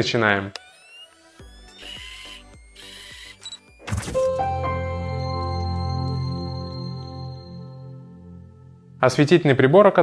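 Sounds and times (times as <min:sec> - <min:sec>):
mechanical ratchet ticks: 0:00.5 - 0:03.6
rising electronic tones: 0:00.5 - 0:08.7.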